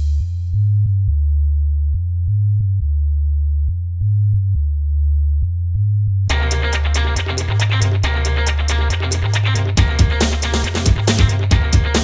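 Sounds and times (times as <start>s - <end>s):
deep synth bass line: 0.0s - 12.0s.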